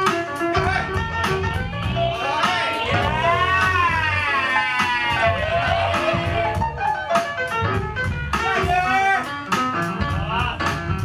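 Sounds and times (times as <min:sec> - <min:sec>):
dance music with bass beat: 0:00.0 - 0:11.0.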